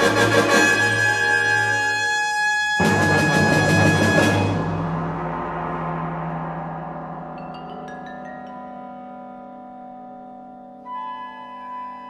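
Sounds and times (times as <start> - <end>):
orchestral percussion crash and roll: 0.0 - 2.0, 2.6 - 9.1.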